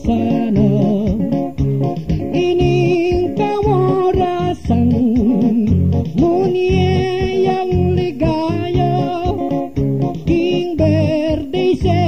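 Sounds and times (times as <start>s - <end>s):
plucked guitar: 0.0s - 12.0s
steady bass beat: 0.0s - 12.0s
person singing wavering melody: 2.3s - 9.6s, 10.2s - 12.0s.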